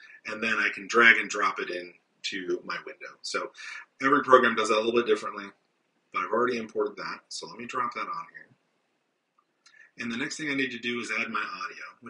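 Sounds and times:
man speaking: 0.0s - 5.5s, 6.2s - 8.4s, 9.9s - 12.0s.

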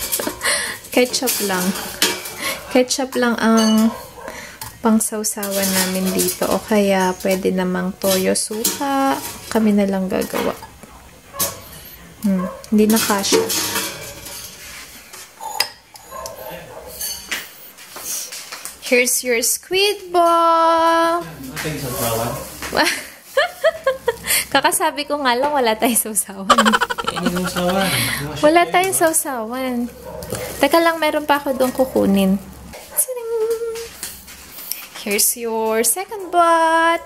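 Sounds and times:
tongs clinking on ceramic mug: 3.6s - 4.0s
person humming: 26.5s - 28.0s.

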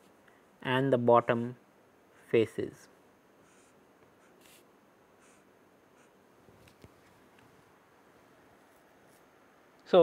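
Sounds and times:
marker scratching on paper: 3.4s - 6.2s.

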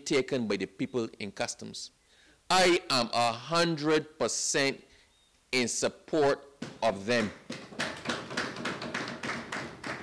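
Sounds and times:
audience clapping: 7.1s - 10.0s.

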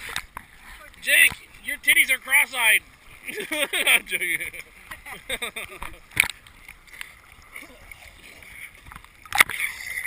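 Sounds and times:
rush of water: 0.0s - 10.0s
sea water lapping: 0.0s - 10.0s
water hitting camera housing: 5.6s - 6.4s.

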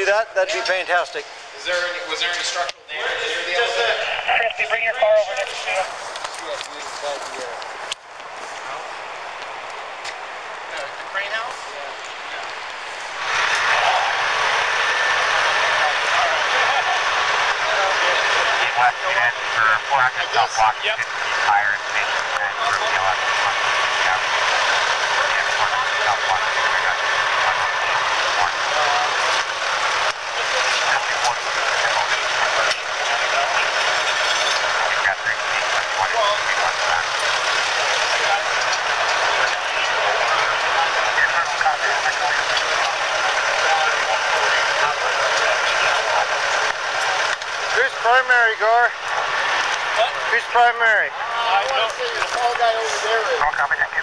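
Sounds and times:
indistinct voices: 0.0s - 54.0s
diesel engine running: 0.5s - 53.8s.

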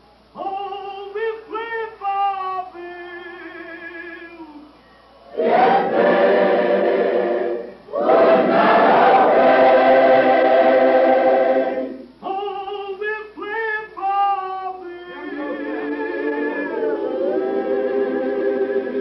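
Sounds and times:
person singing with vibrato: 0.3s - 19.0s
choir singing held chords: 5.2s - 12.3s, 14.7s - 19.0s.

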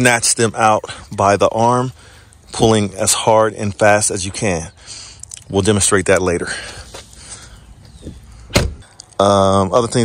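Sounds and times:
car door shutting thud: 8.5s - 8.8s.

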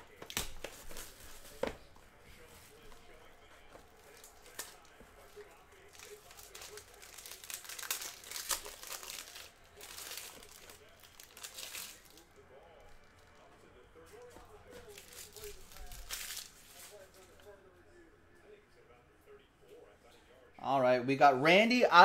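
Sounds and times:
plastic wrap crinkling and tearing: 0.1s - 1.8s, 3.8s - 12.3s, 14.2s - 17.4s.

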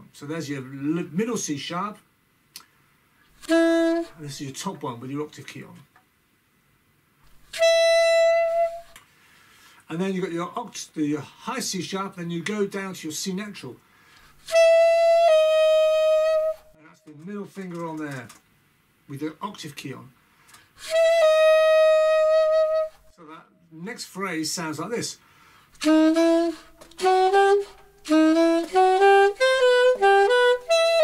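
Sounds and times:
saxophone long high note: 3.4s - 4.4s, 7.5s - 9.0s, 14.5s - 17.0s, 20.8s - 23.0s, 25.8s - 31.0s.

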